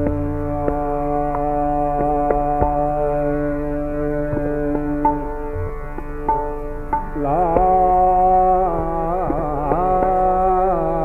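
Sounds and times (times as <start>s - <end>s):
tabla strokes: 0.0s - 11.0s
tanpura drone: 0.0s - 11.0s.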